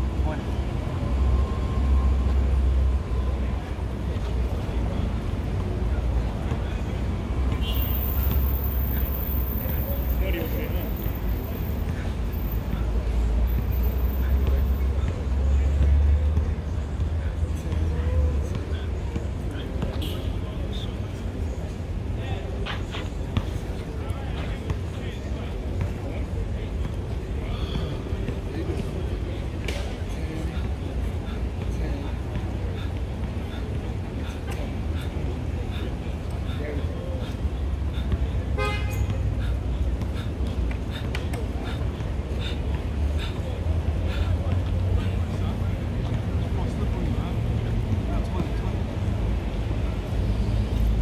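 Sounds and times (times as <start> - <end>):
loud low city rumble: 0.0 - 51.0
car horn toot: 38.6 - 39.1.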